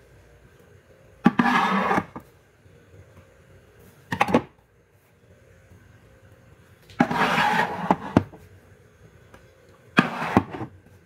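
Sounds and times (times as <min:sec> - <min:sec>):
metal tin scraping along shelf: 0:01.3 - 0:02.2, 0:07.0 - 0:08.3, 0:10.0 - 0:10.7.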